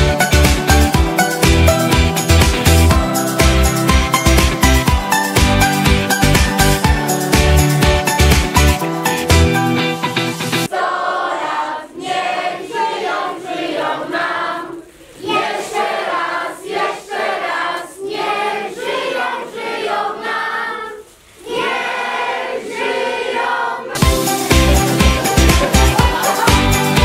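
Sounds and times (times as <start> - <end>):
beat-driven music track: 0.0 - 10.7, 24.0 - 27.0
choir singing: 0.9 - 5.4, 10.6 - 27.0.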